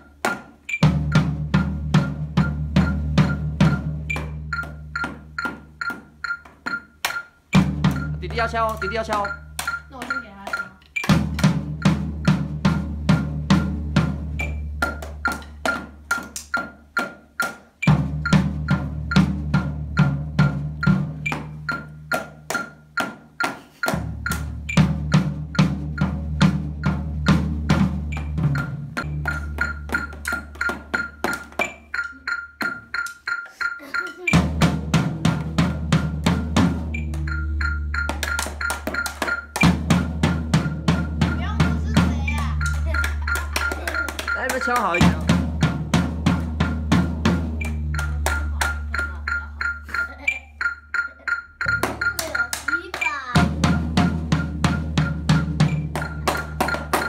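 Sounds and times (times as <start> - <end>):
drumsticks hitting practice pads: 0.0 - 33.3, 34.3 - 57.0
backing track with bass line: 7.6 - 15.7, 33.8 - 57.0.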